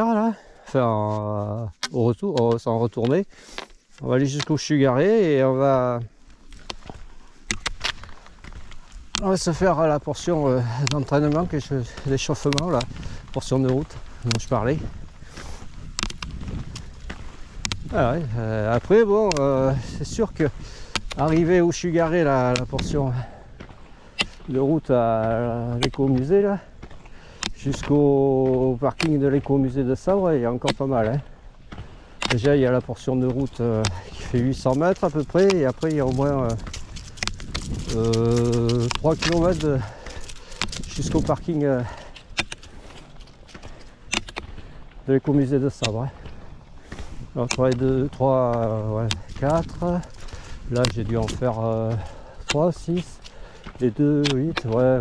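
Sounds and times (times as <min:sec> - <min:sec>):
wheels rolling on asphalt: 0:00.1 - 0:55.0
pole tips clicking on pavement: 0:01.1 - 0:05.1, 0:06.0 - 0:55.0
wind on microphone: 0:10.7 - 0:23.7, 0:33.6 - 0:42.1.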